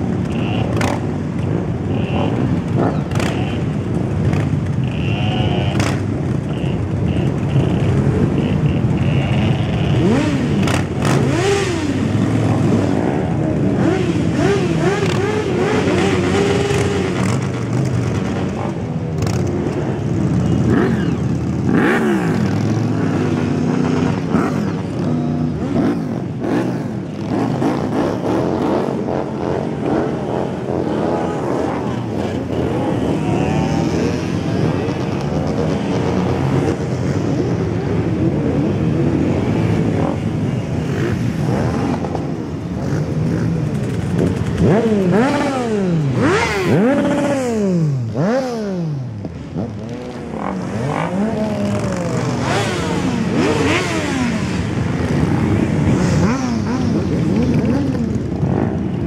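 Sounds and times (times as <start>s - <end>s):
many motorcycles idling: 0.0s - 59.0s
motorcycles revving and pulling away: 0.0s - 59.0s.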